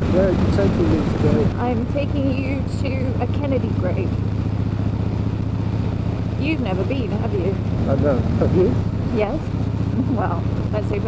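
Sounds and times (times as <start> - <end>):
wind noise: 0.0 - 2.6
motorcycle engine cruising: 0.0 - 11.0
road noise: 0.0 - 11.0.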